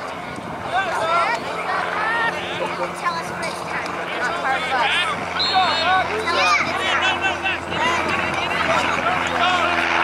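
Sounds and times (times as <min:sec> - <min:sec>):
people shouting and calling out: 0:00.6 - 0:10.0.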